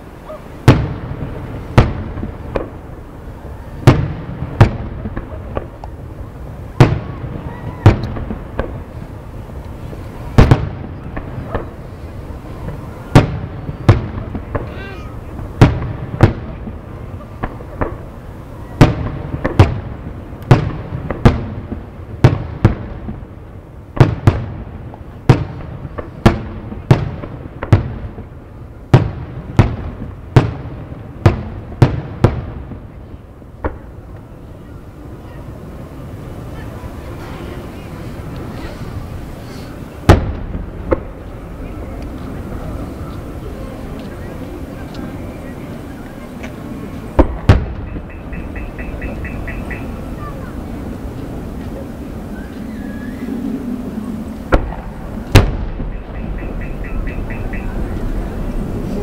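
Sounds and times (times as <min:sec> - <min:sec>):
low rumble: 0:46.6 - 0:59.0.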